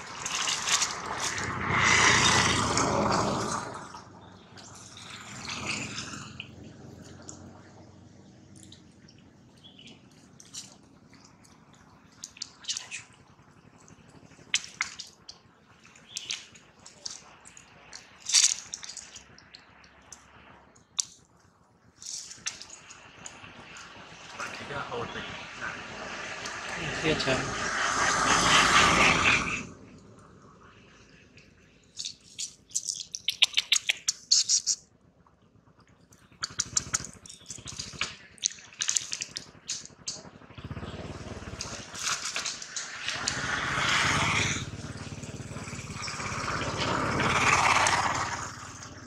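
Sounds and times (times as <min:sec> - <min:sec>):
loud rushing noise: 0:23.5 - 0:29.9, 0:42.7 - 0:48.7
monkey sucking from bottle: 0:32.0 - 0:34.8.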